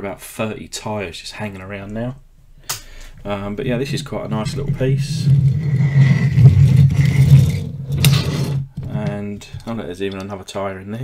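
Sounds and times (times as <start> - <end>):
toy wheels rolling on a mat: 3.7 - 9.8.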